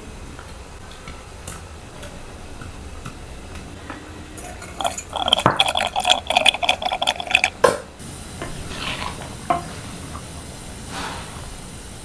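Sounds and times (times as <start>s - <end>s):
spatula stirring gravy: 4.4s - 7.6s
thick gravy bubbling and popping: 4.4s - 7.7s.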